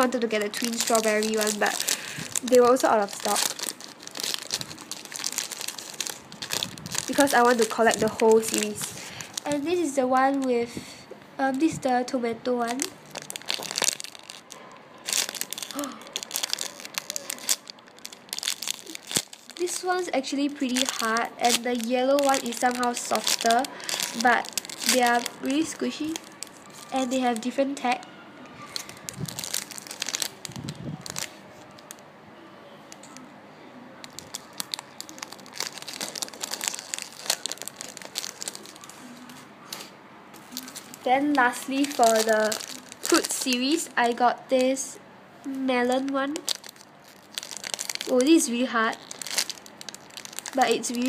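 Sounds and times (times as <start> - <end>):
plastic bag crinkling: 0.0 - 10.9, 12.5 - 28.0, 28.6 - 32.0, 34.0 - 44.9, 45.7 - 51.0.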